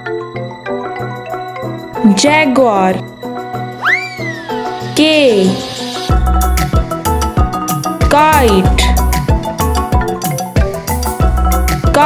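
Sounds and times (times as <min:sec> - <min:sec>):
cheerful children's music: 0:00.0 - 0:12.0
swooping whistle sound effect: 0:03.8 - 0:04.9
high voice calling out: 0:03.8 - 0:05.6.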